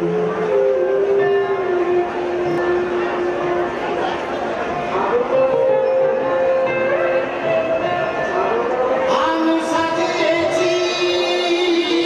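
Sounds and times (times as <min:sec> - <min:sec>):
man singing a long note: 0:09.1 - 0:12.0.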